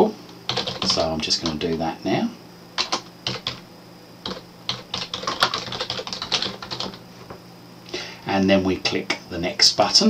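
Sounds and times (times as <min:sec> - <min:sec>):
typing on computer keyboard: 0:00.5 - 0:01.8, 0:02.8 - 0:03.6, 0:04.2 - 0:07.0.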